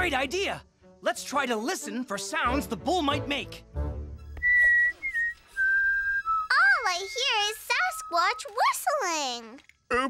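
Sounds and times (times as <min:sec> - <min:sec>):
person whistling held notes: 0:04.2 - 0:08.7.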